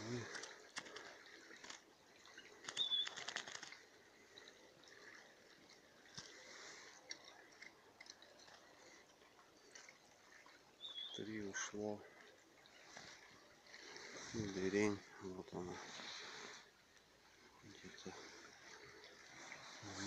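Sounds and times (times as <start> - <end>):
bird wings fluttering: 2.6 - 3.8
short high bird chirp: 2.8 - 3.2, 10.8 - 11.2.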